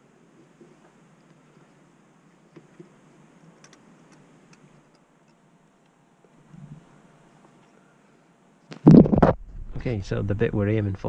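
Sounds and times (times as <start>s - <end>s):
soft low bump: 8.9s - 10.4s.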